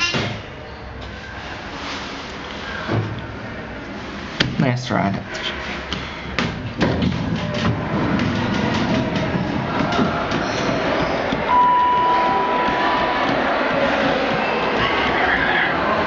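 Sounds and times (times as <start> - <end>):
elevator running: 5.4 - 16.0
steady high tone: 11.5 - 14.0.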